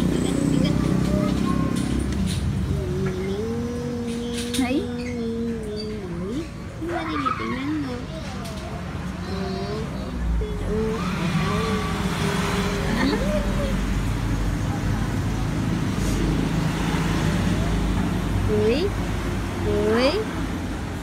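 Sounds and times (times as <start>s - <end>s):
soft wavering vocal sounds: 0.0s - 14.6s
motor vehicle rumble: 0.0s - 21.0s.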